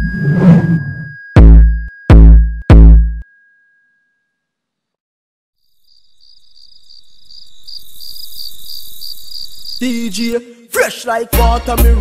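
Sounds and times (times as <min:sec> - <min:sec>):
crickets chirping: 0:05.6 - 0:10.3.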